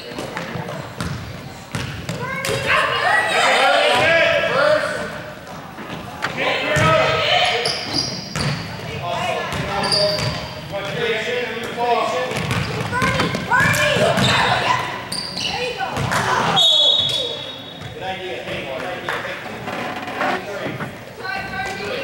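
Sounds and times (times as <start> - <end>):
shouts and chatter: 2.2 - 5.4, 6.2 - 7.9, 12.9 - 17.7
whistle blast: 16.6 - 17.6.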